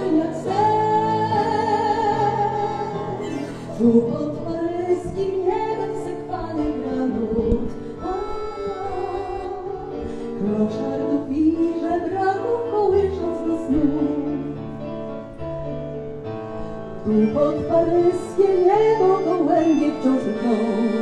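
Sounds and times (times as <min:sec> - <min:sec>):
woman singing: 0:00.0 - 0:14.6, 0:17.0 - 0:21.0
instrumental accompaniment: 0:00.0 - 0:21.0.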